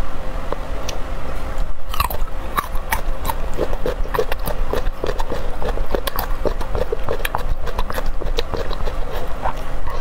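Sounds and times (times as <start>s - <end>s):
close chewing with crunches: 1.9s - 10.0s.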